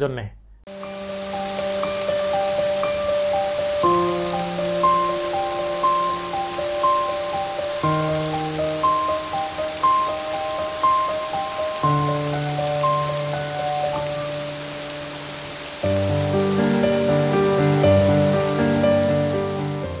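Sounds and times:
falling rain hiss: 0.7 - 20.0
soft instrumental music: 0.7 - 20.0.

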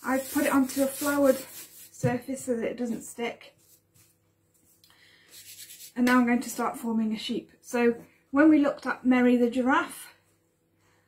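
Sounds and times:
floury hands rubbing: 0.0 - 2.1, 3.6 - 6.2.

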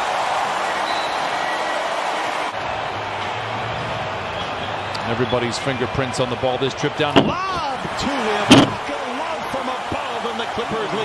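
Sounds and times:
crowd noise over sound system: 0.0 - 11.0.

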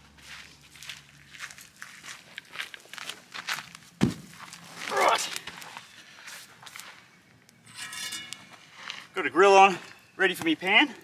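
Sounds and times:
footsteps on rocky dirt: 0.0 - 7.1.

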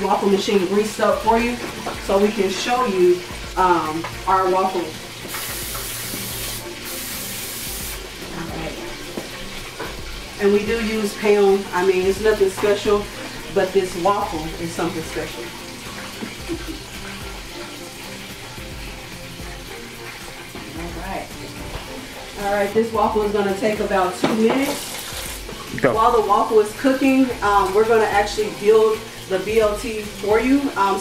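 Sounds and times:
batter sizzling on waffle iron: 0.0 - 31.0
aerosol cooking spray hissing: 2.8 - 9.7, 10.6 - 25.7.

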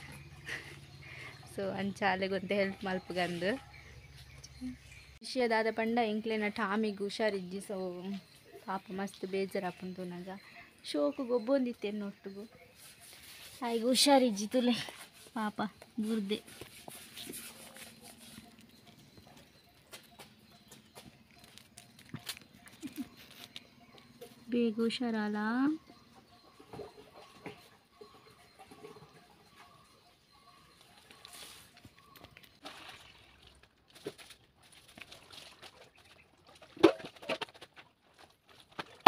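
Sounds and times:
woman talking: 1.1 - 3.7, 4.5 - 12.5, 13.6 - 16.6, 24.5 - 25.9.

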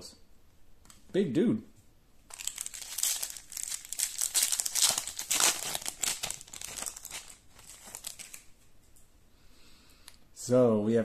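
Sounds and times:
foil wrapper crinkling: 2.3 - 8.6.

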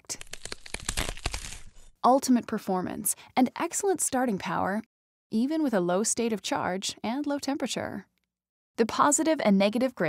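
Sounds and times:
crackling crunching cracks: 0.0 - 1.8.

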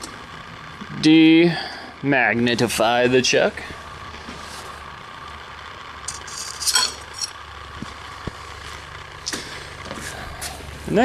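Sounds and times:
low machine hum: 0.0 - 11.0.

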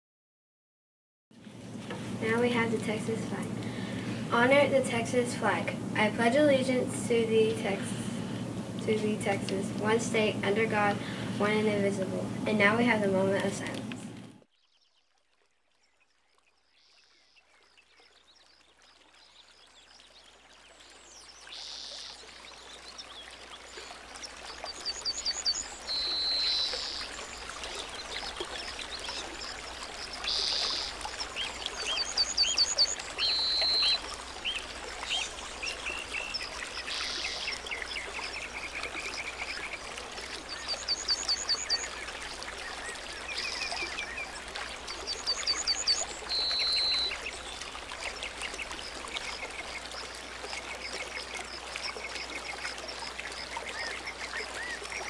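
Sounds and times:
birds chirping: 16.6 - 55.0.

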